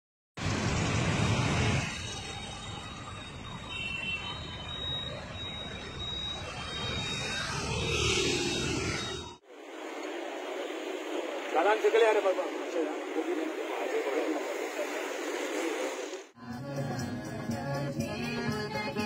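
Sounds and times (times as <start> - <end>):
low traffic rumble: 0.4 - 16.4
rush of passing vehicles: 0.4 - 16.4.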